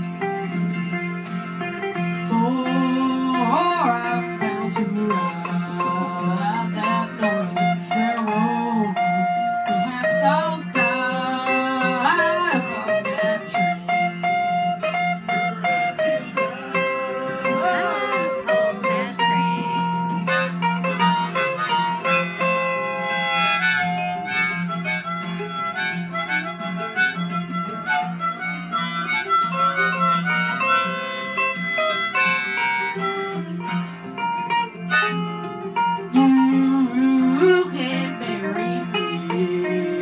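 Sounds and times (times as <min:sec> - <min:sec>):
harmonica playing: 0:00.0 - 0:40.0
karaoke backing track with guitar: 0:00.0 - 0:40.0.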